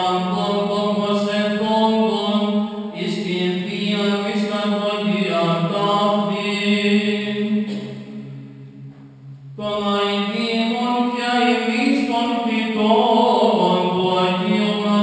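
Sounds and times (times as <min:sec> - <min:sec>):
man chanting in long held notes: 0:00.0 - 0:08.8, 0:09.4 - 0:15.0.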